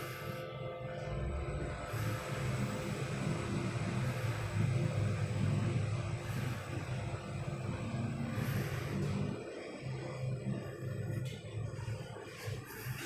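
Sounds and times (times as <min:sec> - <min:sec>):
lift descending rumble: 0:01.0 - 0:12.7.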